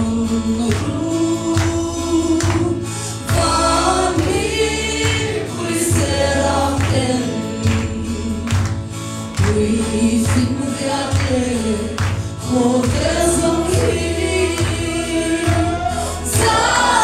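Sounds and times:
voices singing gospel song: 0.0 - 17.0
steady drum beat: 2.5 - 7.8.

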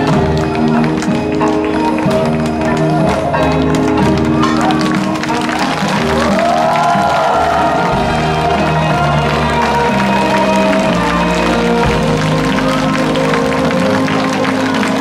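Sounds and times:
audience clapping along: 0.0 - 15.0
traditional drum ensemble: 3.0 - 15.0.

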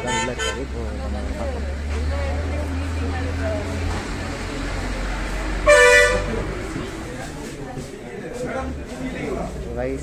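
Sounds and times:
vehicle horn toot: 0.0 - 0.8, 5.6 - 6.4
street traffic rumble: 0.0 - 10.0.

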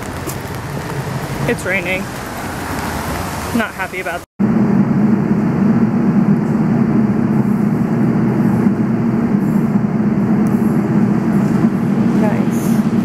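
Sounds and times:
subway train rumbling: 0.0 - 13.0.

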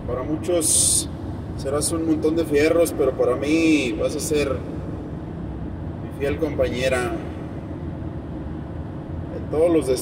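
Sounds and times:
van engine and tyres rumbling: 0.0 - 10.0.

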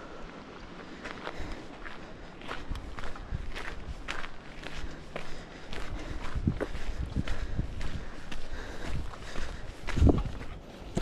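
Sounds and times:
footsteps on gravel trail: 0.0 - 11.0.

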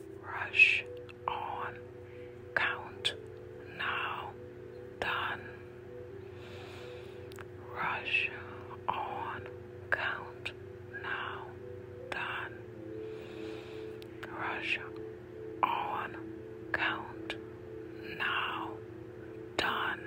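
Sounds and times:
ambient music drone: 0.0 - 20.0
person whispering: 0.2 - 1.8, 2.5 - 4.4, 5.0 - 5.7, 7.4 - 12.6, 14.1 - 15.0, 15.6 - 17.4, 18.0 - 18.8, 19.6 - 20.0.

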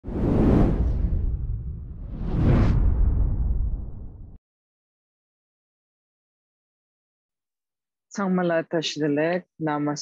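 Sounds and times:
whoosh: 0.0 - 4.4.

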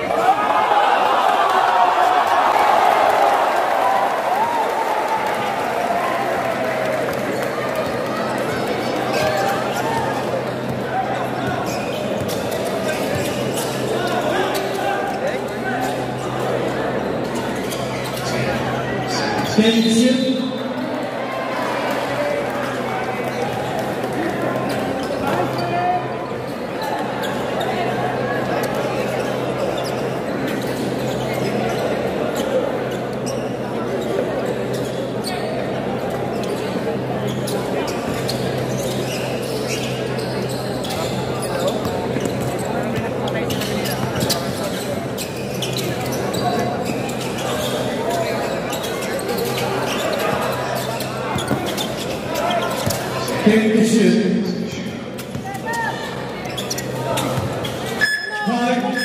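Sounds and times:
crowd voices in echoing gym: 0.0 - 59.0.

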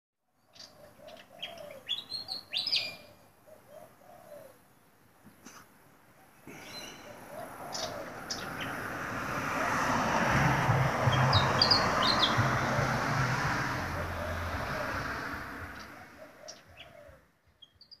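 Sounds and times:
birds chirping: 0.4 - 5.5, 6.2 - 18.0
vehicle passing by: 7.1 - 17.1.

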